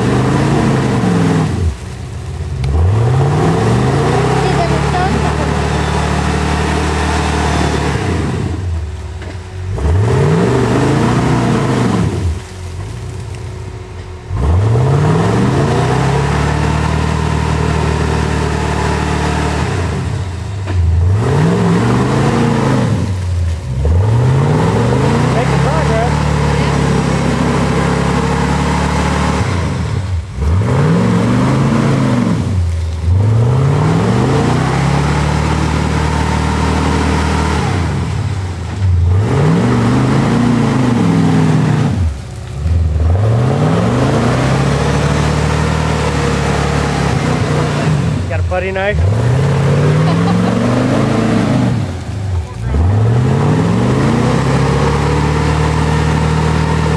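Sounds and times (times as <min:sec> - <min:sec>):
car engine revving: 0:00.0 - 0:56.9.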